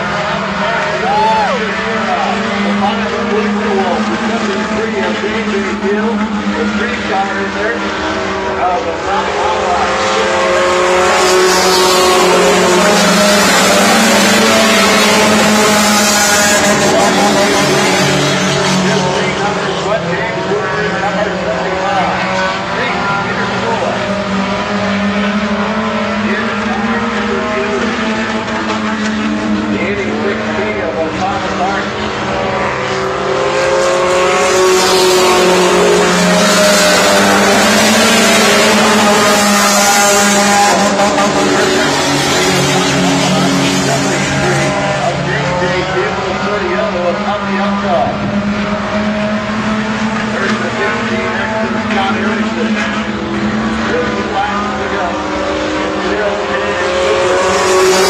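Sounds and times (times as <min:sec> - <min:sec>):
race car engines revving: 0:00.0 - 0:58.0.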